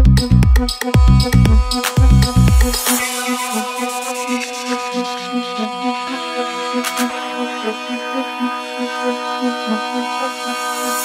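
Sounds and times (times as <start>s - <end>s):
held synth chords: 0.0s - 11.0s
pulsing synth note: 0.0s - 11.0s.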